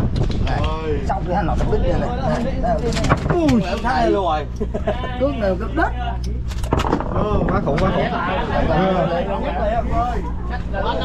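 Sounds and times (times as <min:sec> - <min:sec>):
steady low hum: 0:00.0 - 0:11.0
people talking: 0:00.5 - 0:06.4, 0:07.1 - 0:11.0.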